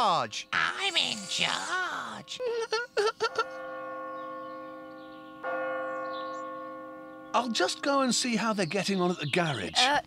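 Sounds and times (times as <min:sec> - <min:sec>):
clock tower bell ringing: 0:03.2 - 0:09.7.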